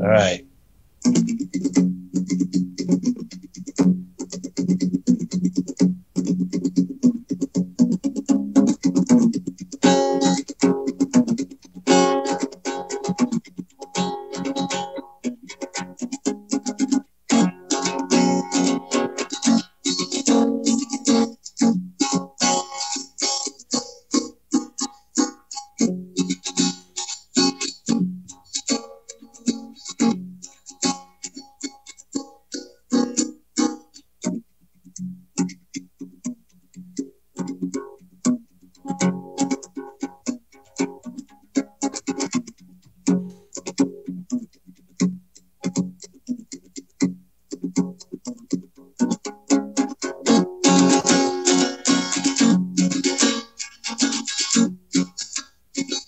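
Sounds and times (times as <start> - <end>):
guitar strummed in quick chords: 1.0 - 56.0.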